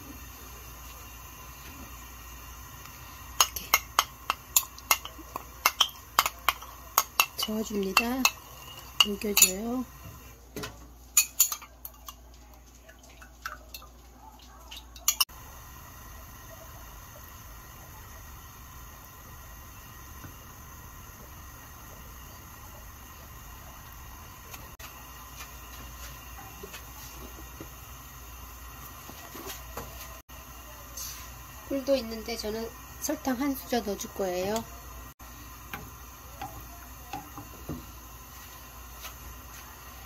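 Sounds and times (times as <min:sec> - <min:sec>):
spoon and bowl clinking on glass: 0:03.4 - 0:09.7, 0:11.2 - 0:12.2, 0:14.7 - 0:15.3
wooden spatula tapping pot: 0:03.4 - 0:09.7, 0:35.7 - 0:37.8.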